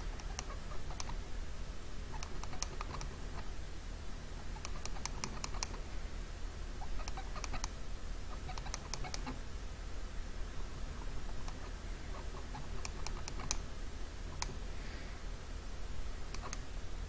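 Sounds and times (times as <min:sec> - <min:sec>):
low electrical hum: 0:00.0 - 0:17.0
computer keyboard typing: 0:04.6 - 0:05.8.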